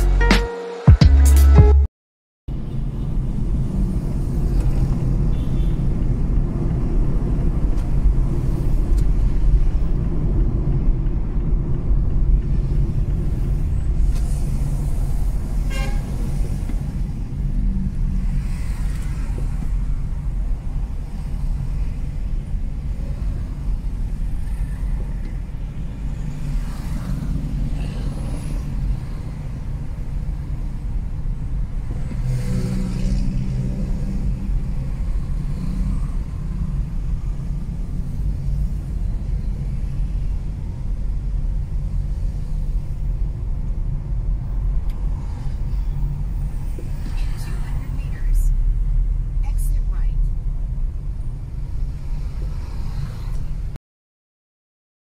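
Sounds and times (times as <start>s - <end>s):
road and engine rumble: 2.5s - 53.8s
vehicle horn tooting: 5.3s - 5.8s, 15.7s - 16.1s.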